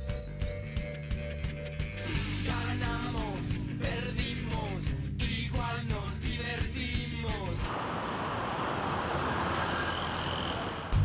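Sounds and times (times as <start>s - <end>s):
cars passing on city street: 7.3s - 11.0s.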